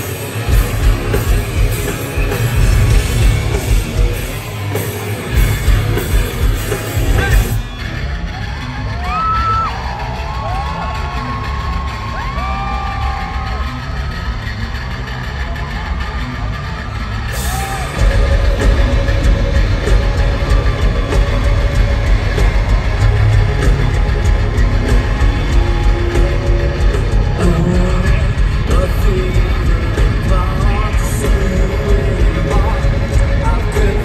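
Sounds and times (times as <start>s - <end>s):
crowd whooping and yelling: 0.0s - 34.0s
rock band playing live: 0.0s - 34.0s.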